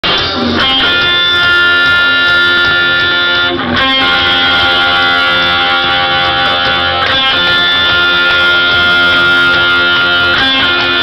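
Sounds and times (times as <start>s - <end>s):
electric guitar chords: 0.0s - 11.0s
live rock music: 0.0s - 11.0s.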